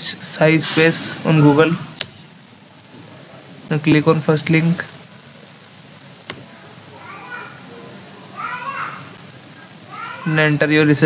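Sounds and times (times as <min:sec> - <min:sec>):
faint voices: 0:00.0 - 0:11.0
steady hiss: 0:00.0 - 0:11.0.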